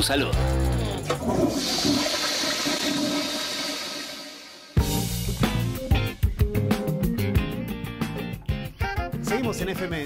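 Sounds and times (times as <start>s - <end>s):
music: 0.0s - 1.4s, 4.8s - 10.0s
toilet flushing: 0.7s - 5.0s.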